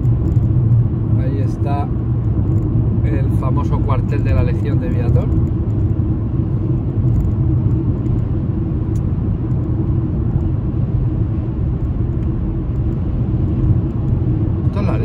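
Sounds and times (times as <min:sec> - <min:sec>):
car engine and road noise: 0:00.0 - 0:15.0.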